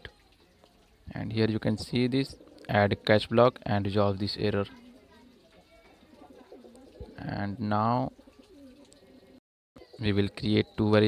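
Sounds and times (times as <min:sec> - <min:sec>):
bird cooing: 0:02.0 - 0:03.0, 0:04.7 - 0:10.9.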